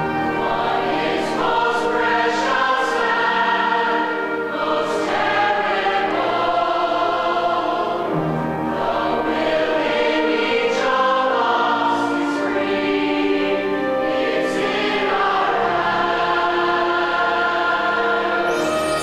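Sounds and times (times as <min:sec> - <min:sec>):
chorus singing held chords: 0:00.0 - 0:19.0.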